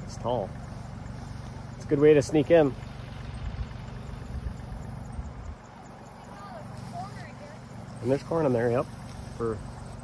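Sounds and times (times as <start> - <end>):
wind buffeting microphone: 2.5 - 5.8.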